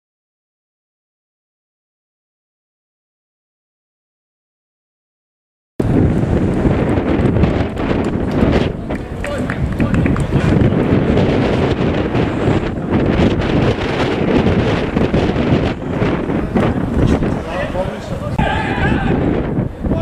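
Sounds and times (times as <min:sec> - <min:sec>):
wind buffeting microphone: 0:05.8 - 0:20.0
faint voices: 0:07.6 - 0:12.9, 0:14.8 - 0:20.0.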